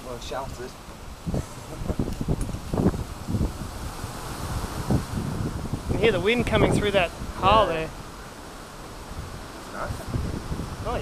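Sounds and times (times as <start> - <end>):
wind buffeting microphone: 0.0 - 11.0
wind rushing through rock: 0.0 - 11.0.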